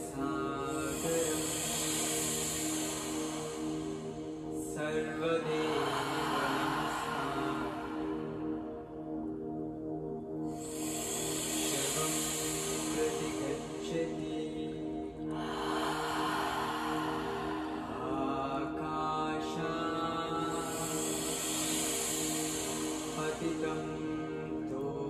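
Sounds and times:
deep breathing: 0:00.0 - 0:18.9, 0:19.7 - 0:24.6
held synth chord: 0:00.0 - 0:25.0.

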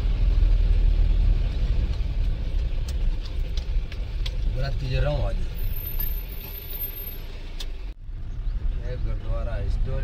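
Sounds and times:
engine and road rumble inside vehicle: 0:00.0 - 0:10.0.

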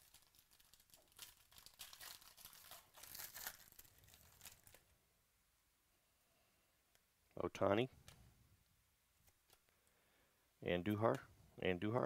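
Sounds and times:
foil pack tearing and crinkling: 0:00.0 - 0:04.8.

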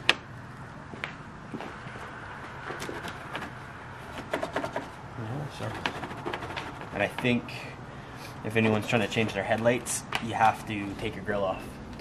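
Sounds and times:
plastic rubbing and scraping: 0:02.6 - 0:07.6, 0:08.5 - 0:11.3.

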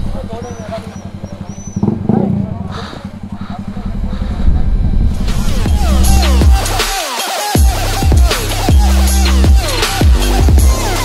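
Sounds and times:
motorcycle engine idling: 0:00.0 - 0:06.8
deep engine rumble: 0:00.0 - 0:07.0, 0:07.6 - 0:11.0.

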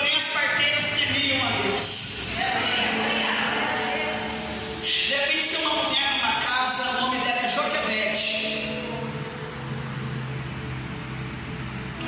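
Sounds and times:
electronic keyboard low chord: 0:00.0 - 0:12.0.

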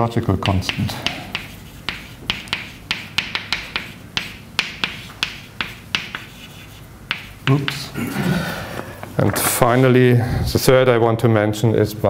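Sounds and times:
chalk scratching: 0:00.4 - 0:07.9
chalk tapping on blackboard: 0:00.4 - 0:07.9.

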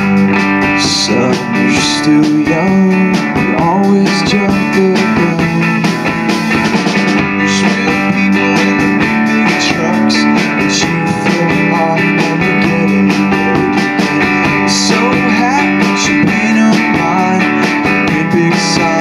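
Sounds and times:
drum kit beat with cymbals: 0:00.0 - 0:19.0
strummed electric guitar: 0:00.0 - 0:19.0.

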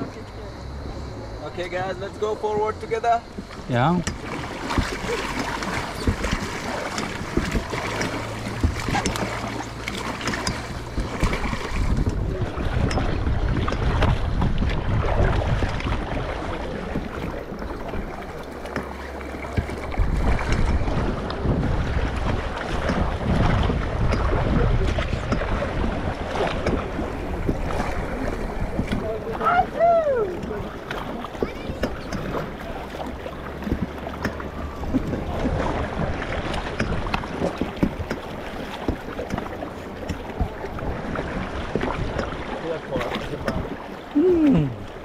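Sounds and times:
paddles splashing in water: 0:00.0 - 0:45.0
river running: 0:00.0 - 0:45.0
wind on microphone: 0:02.7 - 0:18.4, 0:19.4 - 0:33.0, 0:33.6 - 0:45.0.

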